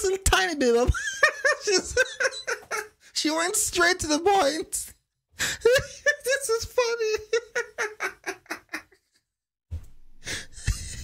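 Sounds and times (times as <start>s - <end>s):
man laughing hard: 1.0s - 3.0s, 5.4s - 9.1s, 10.5s - 11.0s
soft thumps: 9.7s - 10.0s.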